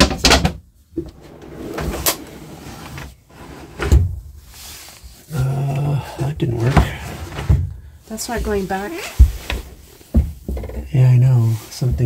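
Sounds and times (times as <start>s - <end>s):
drawer sliding rattle: 1.0s - 4.2s.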